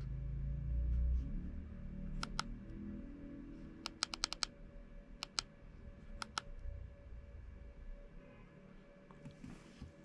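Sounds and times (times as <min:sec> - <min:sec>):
plastic buttons clicking: 0:02.2 - 0:02.5, 0:03.8 - 0:04.5.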